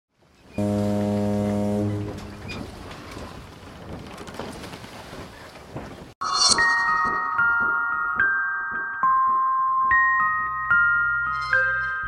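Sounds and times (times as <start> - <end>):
ship's horn blast: 0.6 - 2.8.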